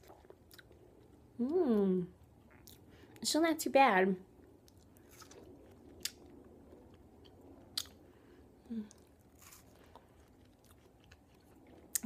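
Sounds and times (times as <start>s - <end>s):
person chewing: 0.0s - 1.2s, 2.2s - 3.2s, 4.6s - 8.1s, 8.7s - 12.0s.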